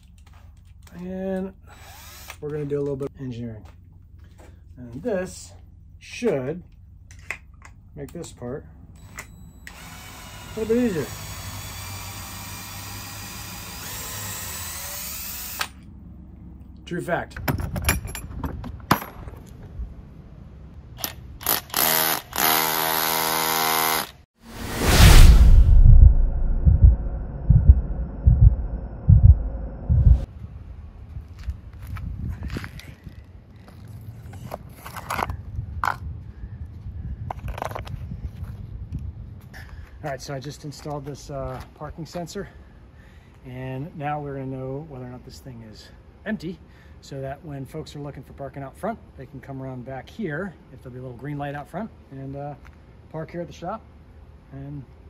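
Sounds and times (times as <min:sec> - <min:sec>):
cordless drill running: 0:01.7 - 0:02.4, 0:09.0 - 0:15.8, 0:21.4 - 0:24.2.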